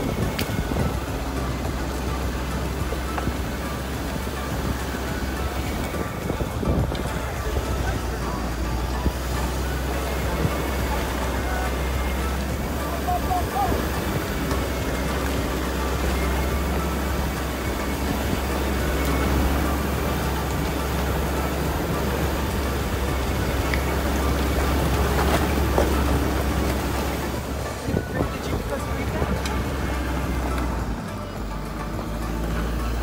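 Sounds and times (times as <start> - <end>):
car engine: 0.0 - 33.0
tyres on gravel: 0.0 - 33.0.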